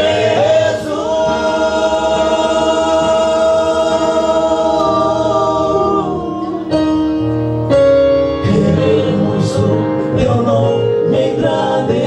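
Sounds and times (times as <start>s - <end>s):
male choir singing in harmony: 0.0s - 7.0s, 8.4s - 12.0s.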